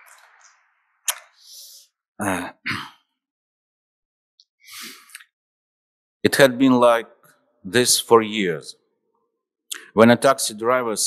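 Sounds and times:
man clearing his throat: 2.2s - 3.0s.

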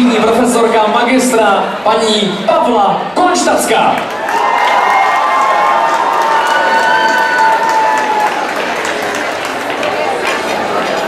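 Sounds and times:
audience applauding: 4.0s - 11.0s.

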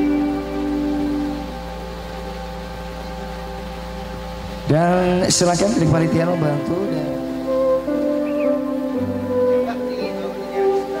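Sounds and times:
band chord over pa: 0.0s - 11.0s
steady low hum: 0.0s - 11.0s.

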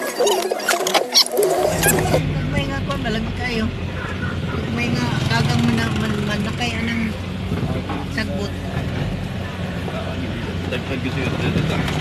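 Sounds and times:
people talking: 0.0s - 12.0s
vehicle engine hum: 1.1s - 12.0s.

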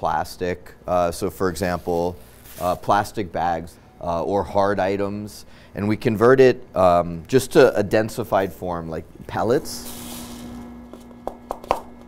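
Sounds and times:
faint steady hum: 0.0s - 12.0s
pellets pouring into plastic funnel: 1.6s - 2.9s, 9.8s - 10.6s.

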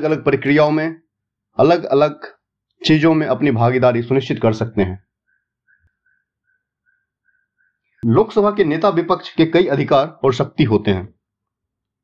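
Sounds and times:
faint high chirps: 5.0s - 8.1s.

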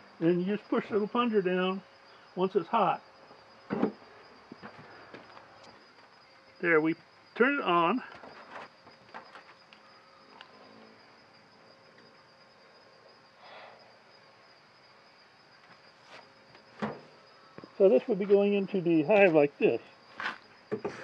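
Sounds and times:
insects chirring: 0.0s - 21.0s.

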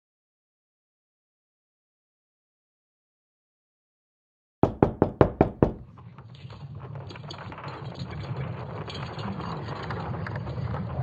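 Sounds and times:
rapid sharp knocking: 4.6s - 5.9s.

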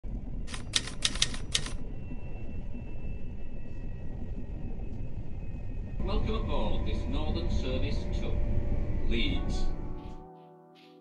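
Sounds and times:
low background rumble: 0.0s - 10.2s
typewriter key clicks: 0.5s - 1.8s.

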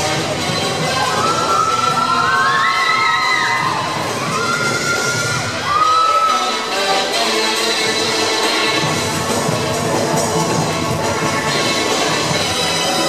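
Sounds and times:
young spectators cheering: 0.8s - 6.6s
long high-pitched shouts: 1.0s - 6.7s.

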